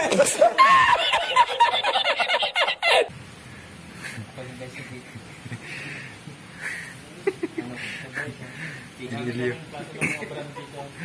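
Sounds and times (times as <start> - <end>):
man laughing: 0.0 - 3.1, 6.6 - 8.4
faint room noise: 0.0 - 11.0.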